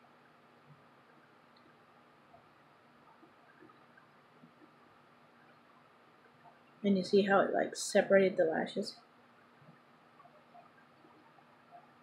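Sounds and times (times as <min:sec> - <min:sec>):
tiny soft ticks: 0:00.6 - 0:06.8.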